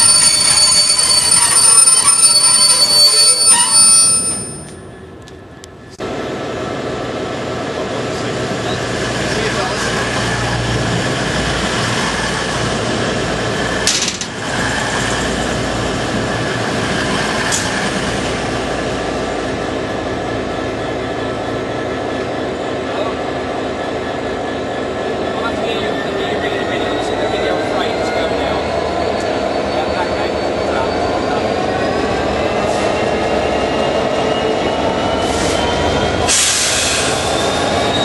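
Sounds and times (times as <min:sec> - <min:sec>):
train passing: 0:00.0 - 0:38.0.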